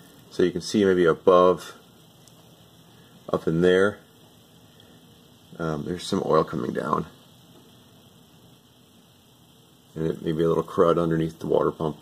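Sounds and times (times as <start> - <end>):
faint room tone and hiss: 0.0 - 12.0.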